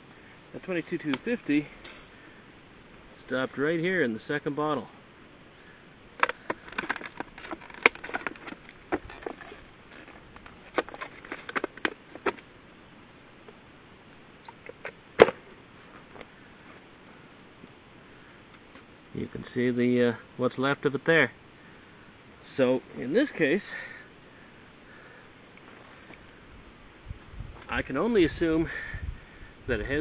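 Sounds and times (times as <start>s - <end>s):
plastic bottle crinkling: 6.2s - 12.4s.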